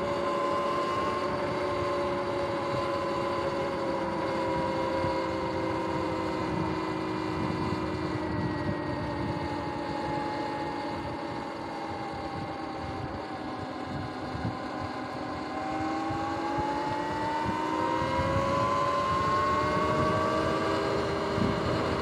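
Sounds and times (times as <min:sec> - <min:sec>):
electric dirt bike motor whining: 0:00.0 - 0:22.0
wind rumbling on microphone: 0:00.0 - 0:22.0.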